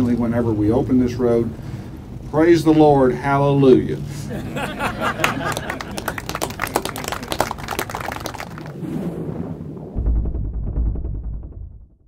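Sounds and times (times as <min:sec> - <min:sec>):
crowd applauding: 0:04.6 - 0:08.8.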